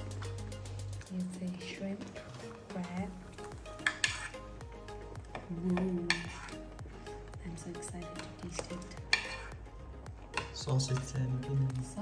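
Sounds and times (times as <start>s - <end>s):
metal spoon scraping porcelain plate: 3.8s - 4.4s, 6.1s - 6.6s, 9.0s - 9.6s.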